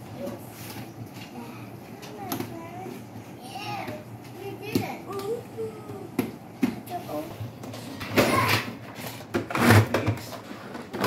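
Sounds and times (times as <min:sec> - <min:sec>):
child making wordless sounds: 0:02.1 - 0:06.2
cardboard scraping: 0:08.9 - 0:11.0.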